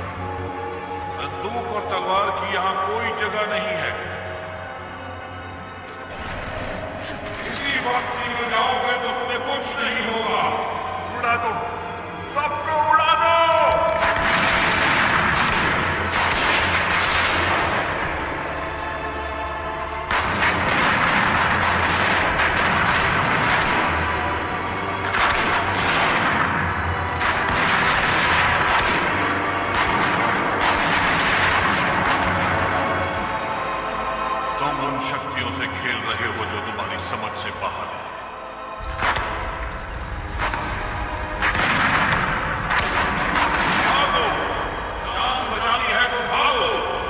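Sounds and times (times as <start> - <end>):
film score music: 0.0 - 47.0
musket and pistol gunfire: 13.9 - 18.3, 20.1 - 32.9, 38.9 - 39.6, 40.4 - 44.5.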